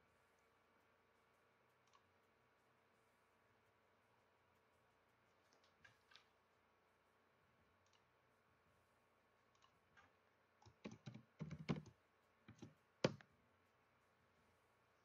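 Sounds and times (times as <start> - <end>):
keyboard and mouse clicks: 9.5 - 13.3.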